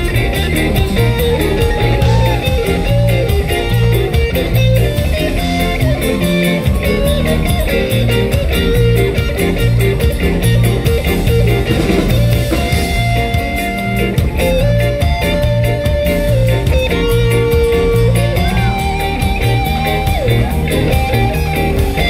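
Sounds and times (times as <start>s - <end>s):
bass guitar: 0.0s - 22.0s
drum kit beat: 0.0s - 22.0s
electric guitar lead: 0.0s - 22.0s.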